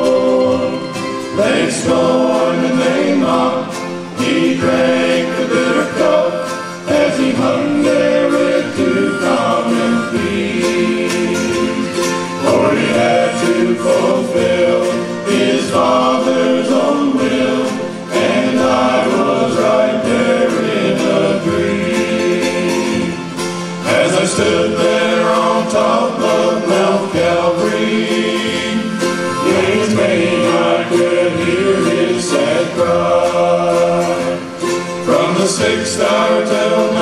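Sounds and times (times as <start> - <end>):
acoustic guitar: 0.0 - 37.0
harmonica: 0.0 - 37.0
men's gospel group singing: 0.0 - 37.0
upright bass: 0.0 - 37.0.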